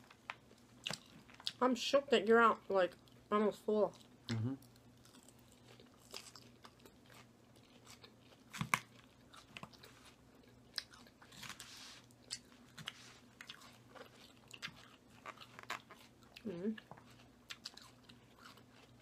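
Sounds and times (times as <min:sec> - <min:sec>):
chewing crunchy salad: 0:00.3 - 0:01.6, 0:03.9 - 0:19.0.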